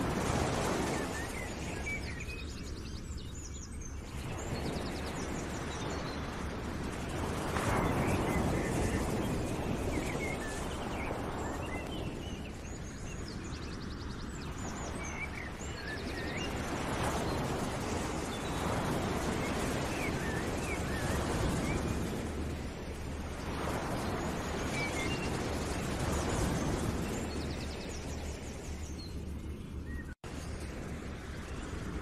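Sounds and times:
rushing outdoor noise: 0.0s - 32.0s
birds chirping: 7.2s - 30.9s.

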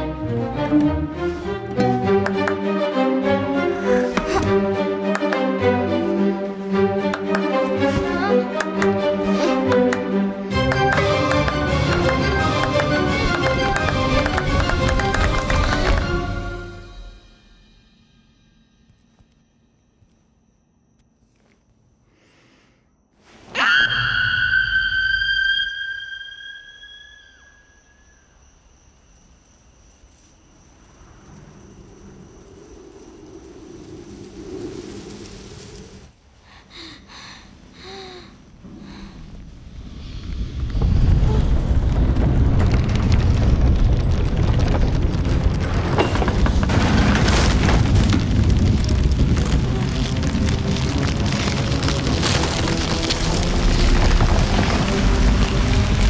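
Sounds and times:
girl screaming: 23.6s - 25.7s
deep loud rumble: 38.5s - 56.0s.

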